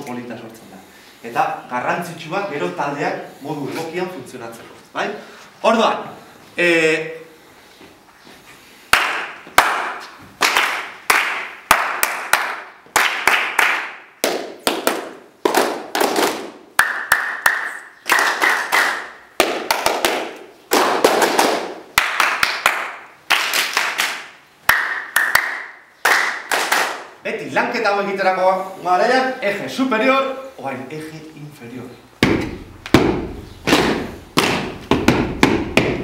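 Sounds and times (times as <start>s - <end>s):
group clapping: 8.9s - 27.2s, 32.3s - 36.0s
person clapping a pattern: 8.9s - 27.2s, 32.2s - 36.0s.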